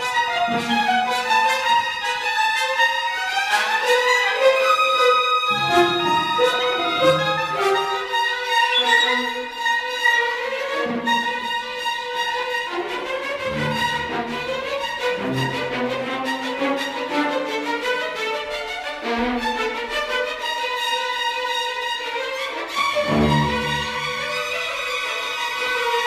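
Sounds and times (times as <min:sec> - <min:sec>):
symphony orchestra playing: 0:00.0 - 0:18.3, 0:21.9 - 0:26.0.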